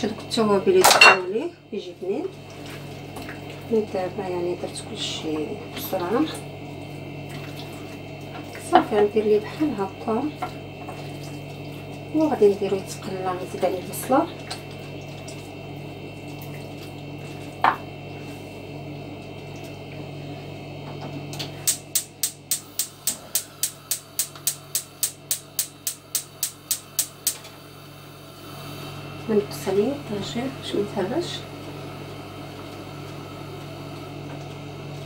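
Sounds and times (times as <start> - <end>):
gas hob igniter clicking: 21.3 - 27.6.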